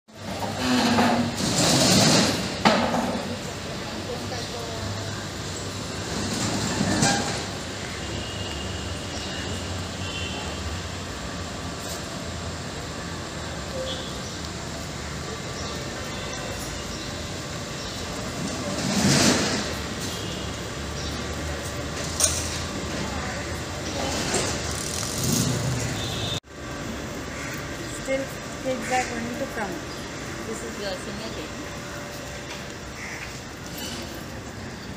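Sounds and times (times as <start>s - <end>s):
road traffic hum: 0.1s - 34.9s
vehicles passing: 0.1s - 34.9s.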